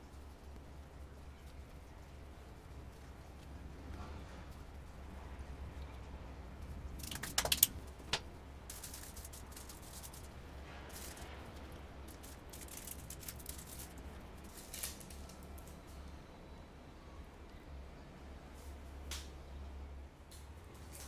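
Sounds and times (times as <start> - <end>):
sharp clicks: 7.0 - 8.2
baking paper rustling: 7.0 - 15.7.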